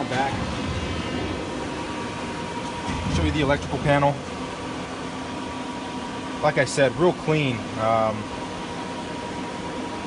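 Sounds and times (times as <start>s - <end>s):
shop machinery humming: 0.0s - 10.0s.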